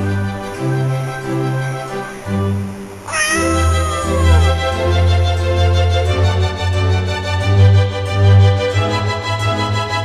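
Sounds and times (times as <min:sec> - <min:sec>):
cat meowing: 0:03.0 - 0:04.8.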